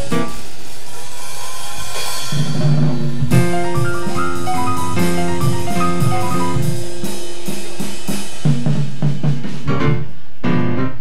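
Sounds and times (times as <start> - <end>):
drum kit cymbals and drums: 0.0 - 10.4
jazz piano: 0.0 - 11.0
low bass notes: 3.2 - 11.0.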